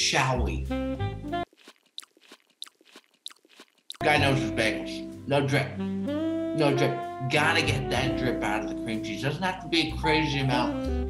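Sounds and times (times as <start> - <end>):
guitar music: 4.0 - 6.4.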